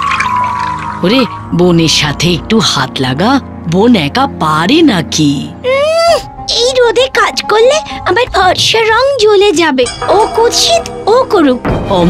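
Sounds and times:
water pouring onto plants: 0:00.0 - 0:01.4
background music: 0:00.0 - 0:12.0
woman speaking: 0:07.1 - 0:12.0.

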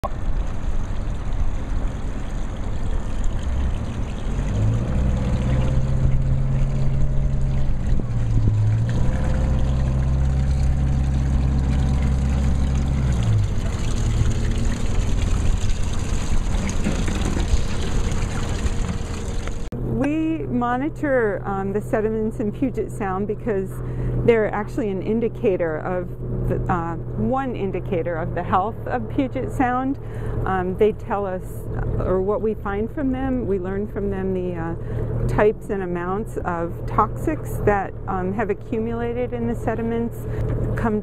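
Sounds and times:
boat engine humming: 0:00.0 - 0:41.0.

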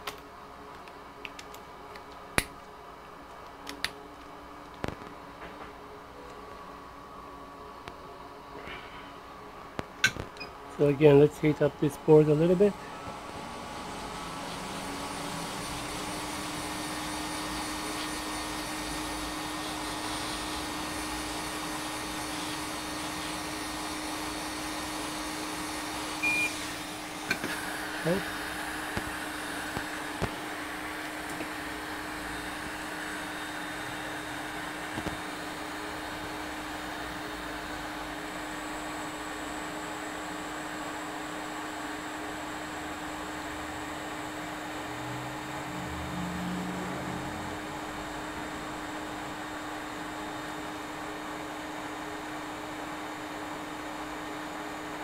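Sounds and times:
steady hum: 0:00.0 - 0:53.3
hot air blower hissing: 0:10.7 - 0:55.0.

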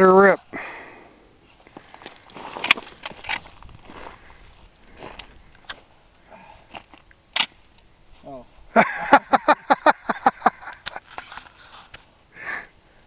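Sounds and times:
rifle handling clicks and knocks: 0:01.9 - 0:03.6.

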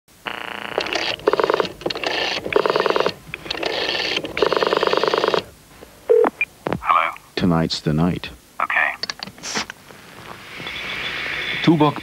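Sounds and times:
electronic telephone ringer trilling: 0:00.3 - 0:05.5.

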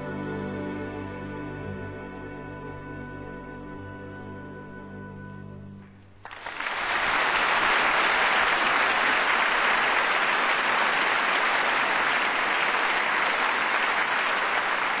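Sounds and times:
audience applauding: 0:06.2 - 0:15.0.

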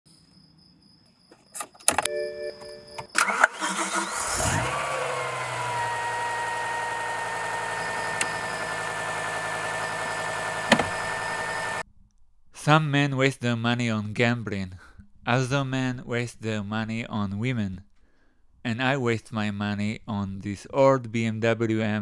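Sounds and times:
car engine starting and idling: 0:03.2 - 0:11.8
faint whine: 0:06.3 - 0:11.8
click: 0:08.1 - 0:08.5.

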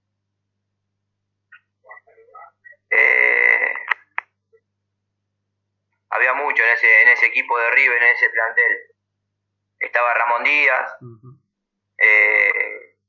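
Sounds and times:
man's hesitation sound: 0:11.0 - 0:11.4.

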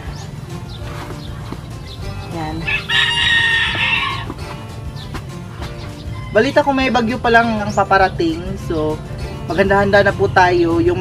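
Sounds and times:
rooster crowing: 0:02.7 - 0:04.4, 0:06.1 - 0:06.6.

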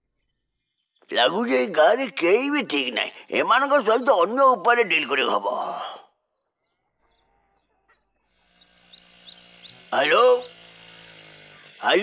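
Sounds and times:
bird chirps: 0:00.0 - 0:02.2, 0:02.8 - 0:12.0
faint outdoor ambience: 0:00.0 - 0:12.0.

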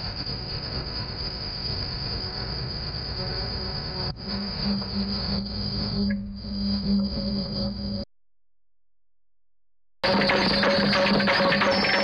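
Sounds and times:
high-pitched whine: 0:00.0 - 0:08.1, 0:10.0 - 0:12.0.

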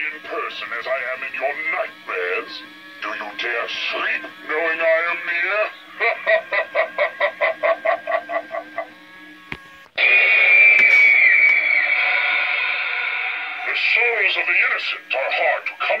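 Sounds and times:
rapid evil laugh: 0:06.0 - 0:08.9
loud high screech: 0:10.0 - 0:14.4.

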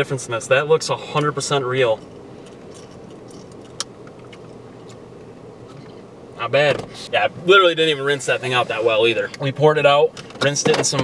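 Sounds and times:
car interior hum: 0:00.0 - 0:11.0.

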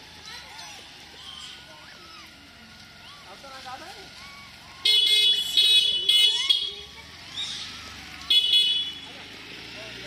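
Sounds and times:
vehicle horn honking: 0:04.8 - 0:06.9, 0:08.3 - 0:09.2
monkeys squealing: 0:06.3 - 0:08.0.

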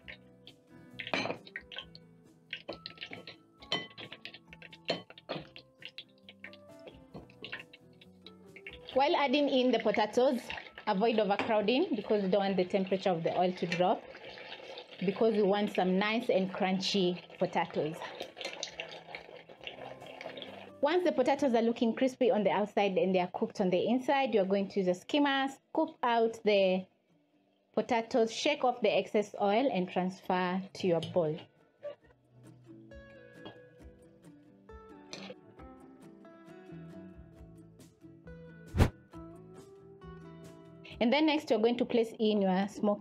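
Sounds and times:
background music: 0:00.0 - 0:26.8, 0:27.8 - 0:43.0
potatoes sizzling in hot oil: 0:01.0 - 0:20.8
metal skimmer clinking on glass bowl: 0:02.8 - 0:04.2.

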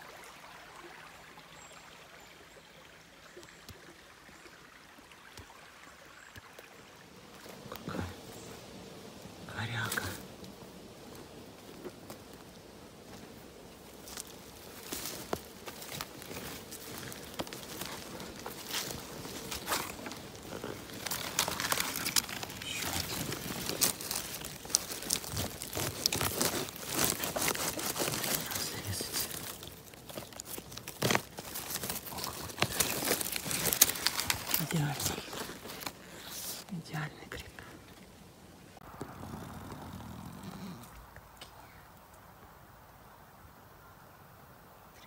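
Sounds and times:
dry leaves and twigs crackling: 0:05.2 - 0:42.6.

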